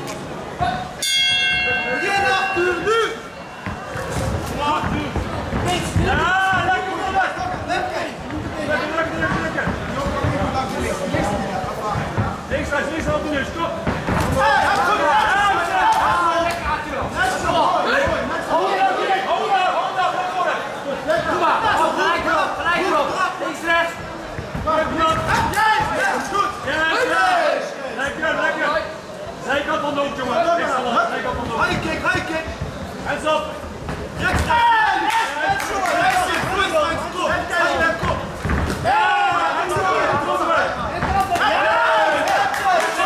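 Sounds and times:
people shouting in a large hall: 0.5 - 9.3, 14.1 - 24.0, 24.8 - 29.0, 34.2 - 43.0.

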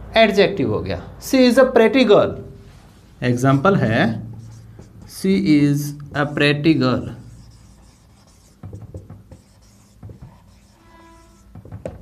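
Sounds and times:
marker writing on a whiteboard: 2.8 - 12.0.

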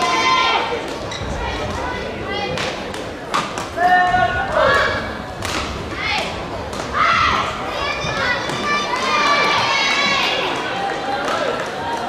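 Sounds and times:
shoes squeaking on court floor: 1.0 - 1.4.

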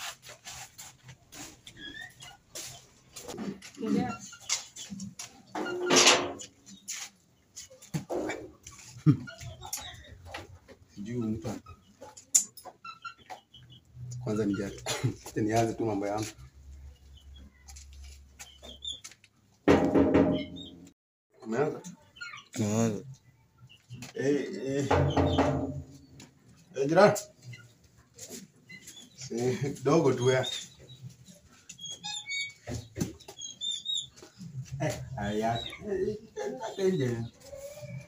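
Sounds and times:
small birds chirping: 1.4 - 5.8, 6.5 - 19.5, 20.3 - 38.0.

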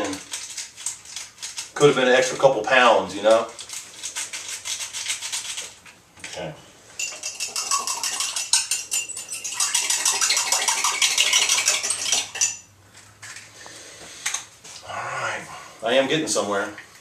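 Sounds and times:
spoon clinking against glass: 7.0 - 12.7.

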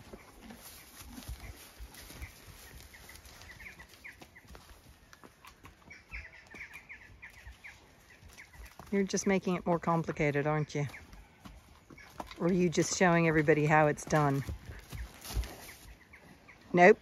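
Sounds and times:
faint birds chirping: 0.0 - 17.0.

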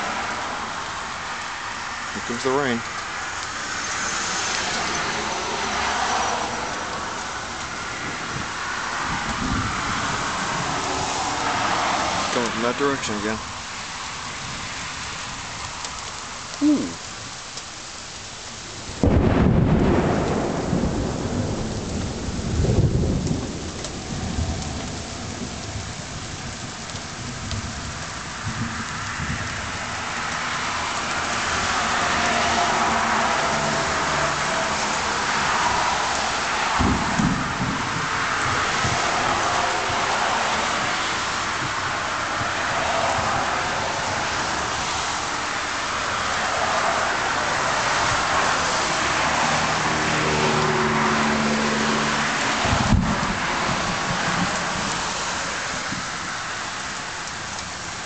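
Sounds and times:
heavy rain pouring: 0.0 - 58.0
thunderclap rumbling: 4.0 - 12.6, 19.0 - 45.4, 52.5 - 55.0.

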